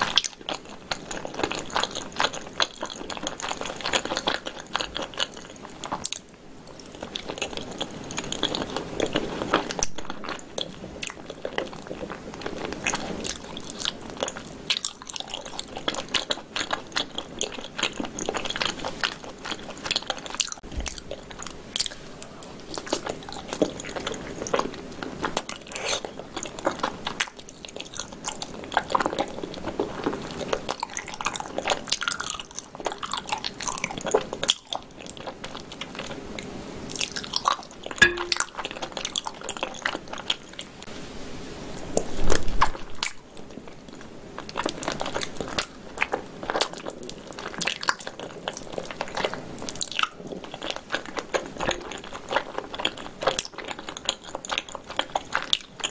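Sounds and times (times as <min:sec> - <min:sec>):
chewing and biting meat: 0:00.0 - 0:36.3, 0:42.7 - 0:55.9
wet mouth sounds: 0:25.3 - 0:28.1, 0:38.0 - 0:39.2.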